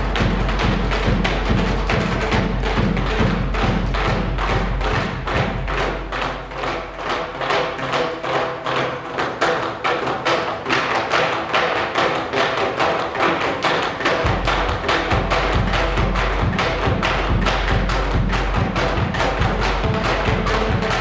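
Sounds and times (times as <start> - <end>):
deep drum thumps: 0.0 - 6.5, 14.2 - 21.0
percussion ensemble playing: 0.0 - 21.0.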